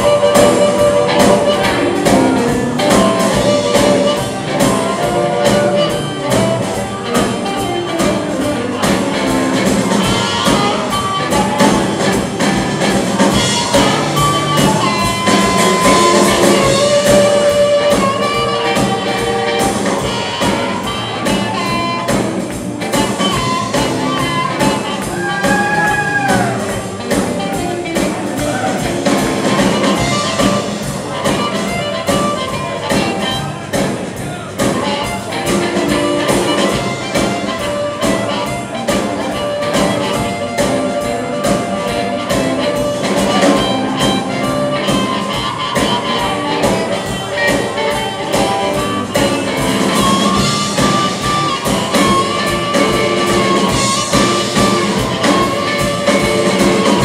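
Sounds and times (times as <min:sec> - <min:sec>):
drums: 0:00.0 - 0:57.0
electric guitar: 0:00.0 - 0:57.0
harmonica lead: 0:00.0 - 0:57.0
upright bass: 0:00.0 - 0:57.0.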